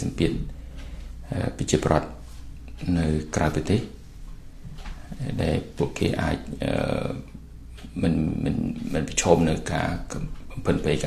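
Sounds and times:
man speaking: 0.0s - 0.6s, 1.3s - 4.0s, 5.1s - 11.0s.

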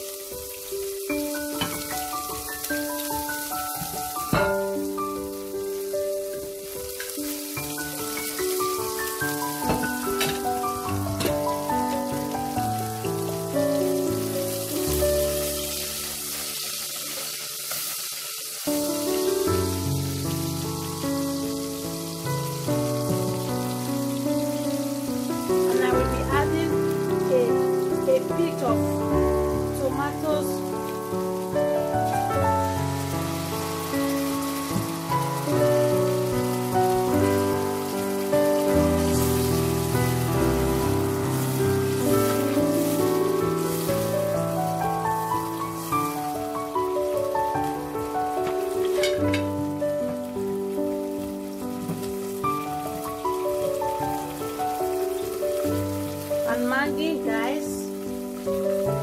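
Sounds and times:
instrumental background music: 0.0s - 59.0s
onions sizzling in oil: 0.0s - 59.0s.

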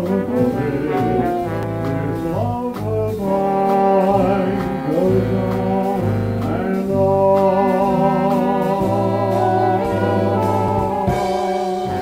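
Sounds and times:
horns holding sustained chords: 0.0s - 7.0s, 7.6s - 12.0s
bass: 0.0s - 12.0s
light drums keeping time: 0.0s - 12.0s
piano: 0.0s - 12.0s.

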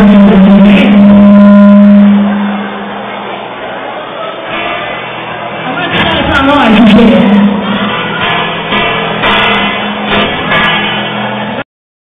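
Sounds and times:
held note through speakers: 0.0s - 3.5s, 4.5s - 11.6s.

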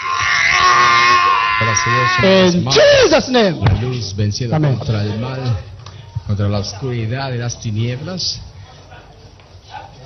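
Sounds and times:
woman screaming: 0.0s - 3.2s
man's voice: 1.6s - 8.5s.

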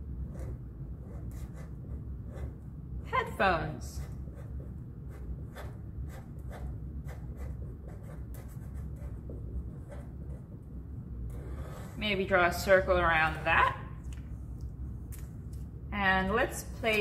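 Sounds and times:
low steady hum: 0.0s - 17.0s
marker writing on paper: 0.2s - 2.6s, 4.0s - 12.0s.

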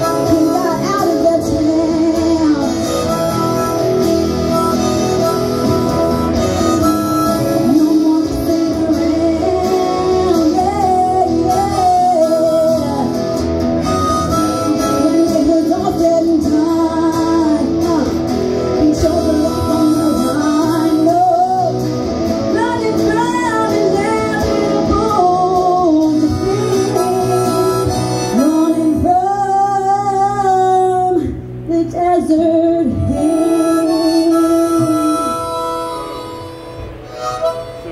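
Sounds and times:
woman singing: 0.0s - 3.8s, 7.3s - 13.5s, 14.6s - 35.6s
harmonica through a microphone: 0.0s - 37.9s.

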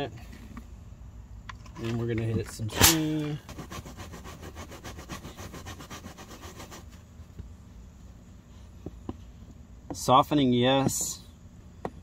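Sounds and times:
brush scrubbing wet carpet: 3.4s - 7.0s.

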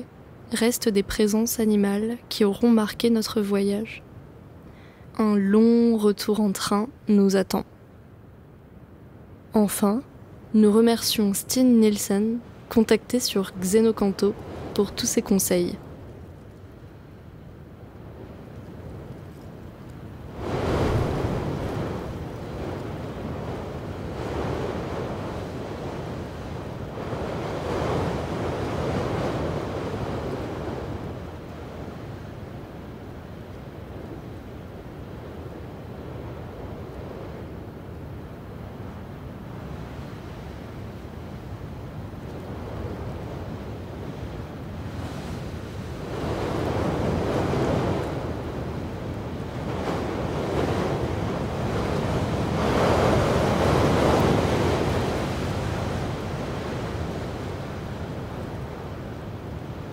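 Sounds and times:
sea waves washing in: 10.4s - 59.9s
wind on microphone: 13.6s - 59.9s.

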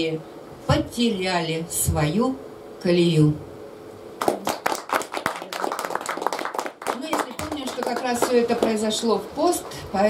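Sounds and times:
audience applauding: 4.2s - 8.9s.

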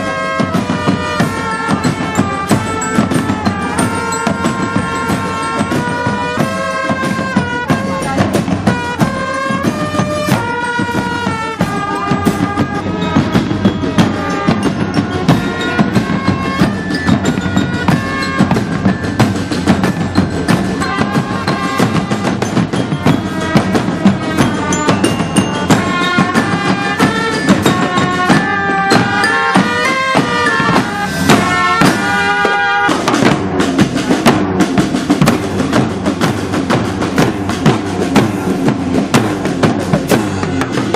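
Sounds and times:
bass drums beating: 0.0s - 40.9s
marching band melody: 0.0s - 40.9s
snare drums beating: 0.0s - 40.9s.

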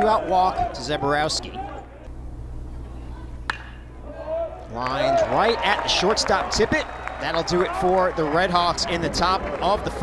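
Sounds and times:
steady low hum: 1.8s - 4.8s
bat hitting ball: 3.4s - 3.9s.

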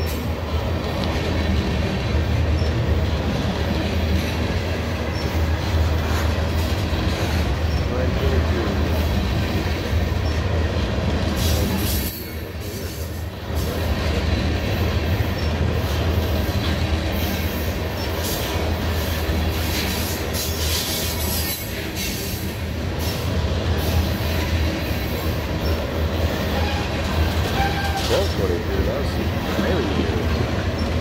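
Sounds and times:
sharp high rail noises: 0.0s - 31.0s
train wheels rumbling on rails: 0.0s - 31.0s.

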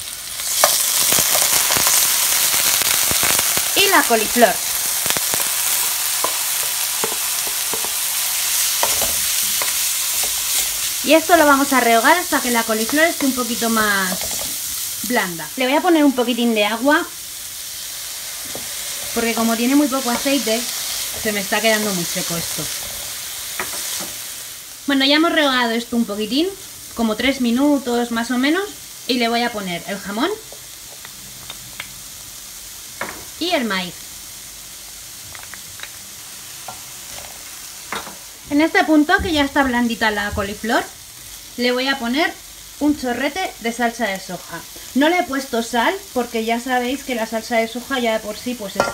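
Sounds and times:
food sizzling in oil: 0.0s - 48.9s
wooden spoon tapping and scraping pan: 6.2s - 8.0s, 8.7s - 10.4s, 12.8s - 13.4s.

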